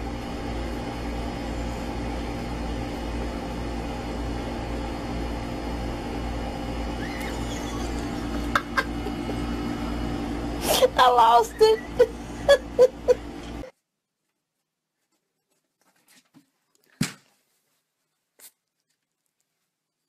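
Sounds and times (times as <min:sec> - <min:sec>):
steady low hum: 0:00.0 - 0:14.0
laughter: 0:07.0 - 0:09.5, 0:11.6 - 0:13.3.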